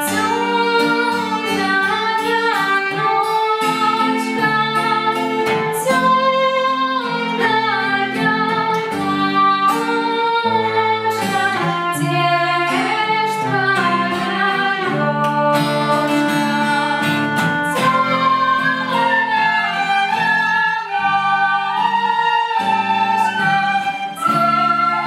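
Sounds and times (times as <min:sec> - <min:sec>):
children playing wooden flutes: 0:00.0 - 0:25.0
strummed acoustic guitar: 0:00.0 - 0:25.0
violin: 0:00.0 - 0:25.0.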